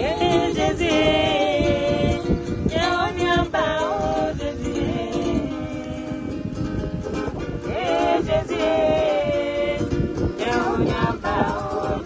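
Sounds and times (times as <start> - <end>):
women singing gospel: 0.0 - 6.9, 7.5 - 12.0
acoustic guitar strumming: 0.0 - 12.0.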